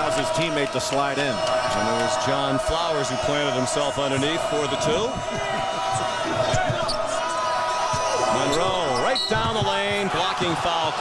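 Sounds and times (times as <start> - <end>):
murmur of arena crowd: 0.0 - 11.0
basketball bouncing on hardwood: 7.9 - 10.0.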